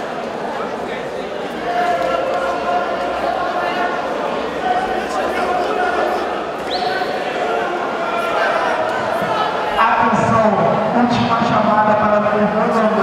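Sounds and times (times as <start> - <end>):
people calling and talking: 0.0 - 13.0.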